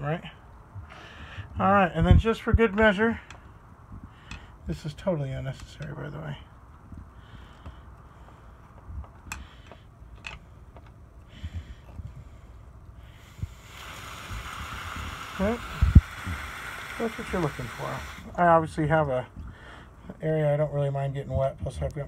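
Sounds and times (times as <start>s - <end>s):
hiss of air and water: 13.0s - 18.8s.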